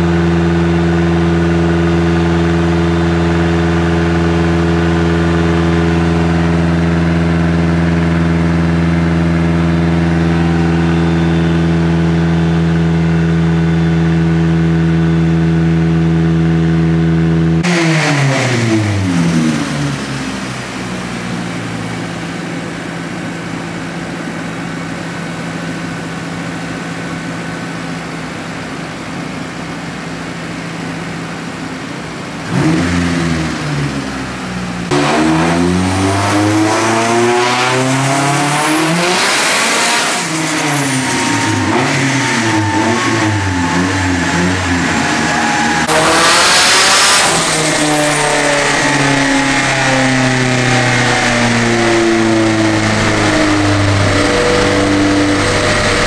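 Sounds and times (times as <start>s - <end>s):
turbocharged car engine revving: 0.0s - 23.6s, 32.3s - 56.0s.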